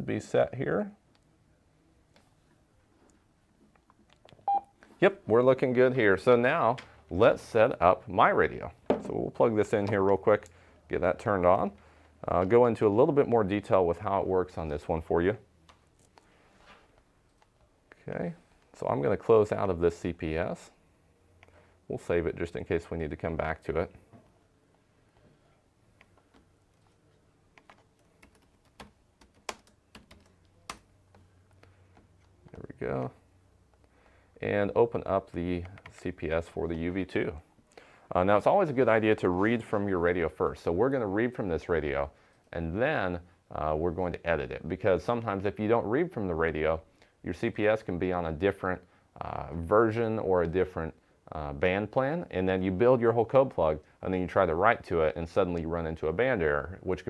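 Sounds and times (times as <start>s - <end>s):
typing on laptop keyboard: 27.6s - 31.2s.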